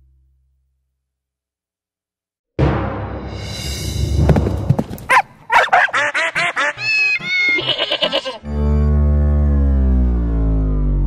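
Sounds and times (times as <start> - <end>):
cartoon dogs yipping: 5.1 - 8.4
long low falling note: 8.6 - 11.0.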